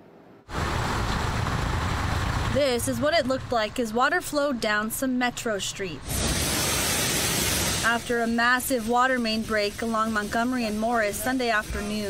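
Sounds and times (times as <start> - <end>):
water rushing down a street: 0.5 - 4.7, 6.0 - 12.0.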